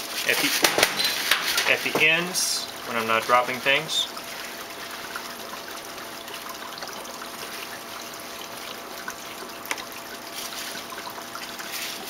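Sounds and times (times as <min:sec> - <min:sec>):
man talking: 0:00.2 - 0:00.8, 0:01.5 - 0:04.2.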